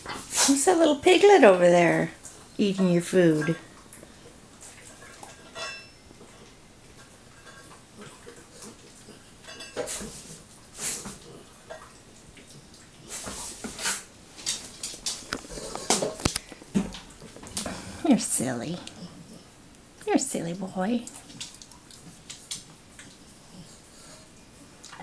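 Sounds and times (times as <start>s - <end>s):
metal bowl clinking and scraping: 4.8s - 6.5s, 7.2s - 11.8s.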